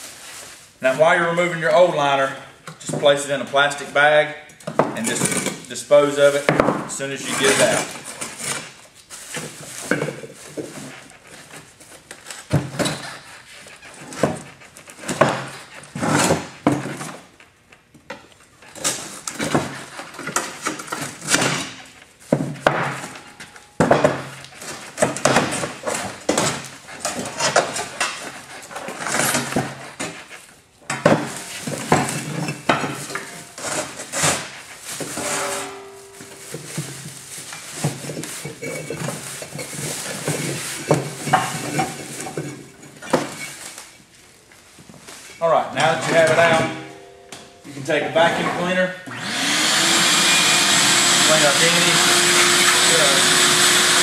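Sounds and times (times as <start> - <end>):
liner scraping and crumbling: 7.0 - 12.0, 31.2 - 44.0
plastic bag rustling: 7.3 - 12.5, 29.7 - 47.9.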